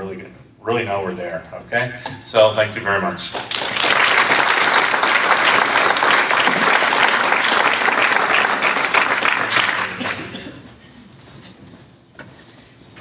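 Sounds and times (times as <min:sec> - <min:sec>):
audience applauding: 0:03.3 - 0:10.4.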